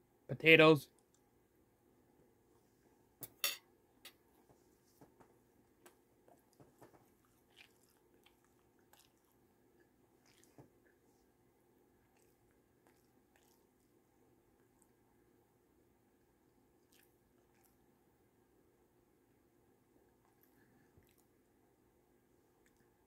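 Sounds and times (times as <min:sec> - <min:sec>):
person chewing crunchy food: 0:06.5 - 0:09.4, 0:10.2 - 0:10.6, 0:12.1 - 0:13.9, 0:16.8 - 0:17.8.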